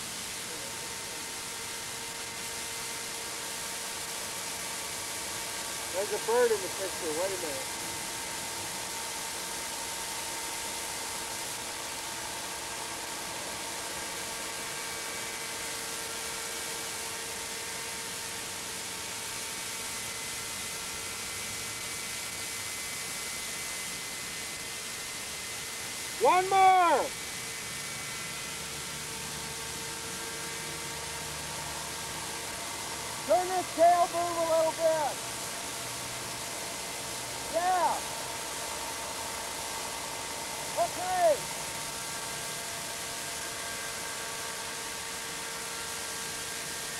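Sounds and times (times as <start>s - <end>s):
steady hiss: 0.0s - 10.4s, 23.0s - 46.9s
model helicopter engine whine: 0.0s - 46.9s.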